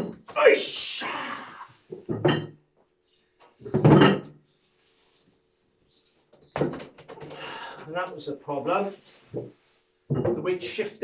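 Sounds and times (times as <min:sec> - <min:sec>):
wooden knocks and thuds: 0:00.0 - 0:00.3, 0:01.9 - 0:02.6, 0:03.6 - 0:04.4, 0:06.5 - 0:07.4, 0:09.3 - 0:10.5
person grunting and breathing: 0:01.0 - 0:01.8, 0:07.3 - 0:07.9.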